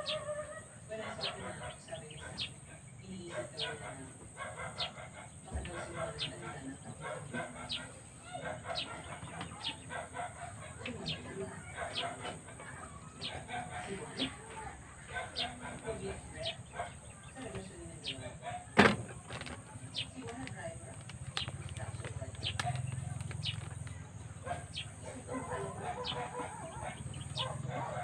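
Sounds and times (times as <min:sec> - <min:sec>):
birds chirping: 0:00.0 - 0:28.0
lower bird calls: 0:19.7 - 0:28.0.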